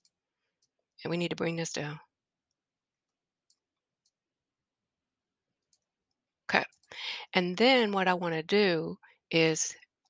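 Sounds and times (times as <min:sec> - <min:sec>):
computer mouse clicks: 0:02.4 - 0:04.2, 0:05.6 - 0:07.0.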